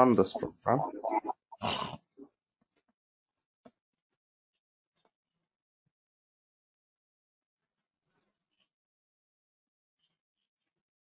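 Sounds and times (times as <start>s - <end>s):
man murmuring: 0.0s - 1.3s.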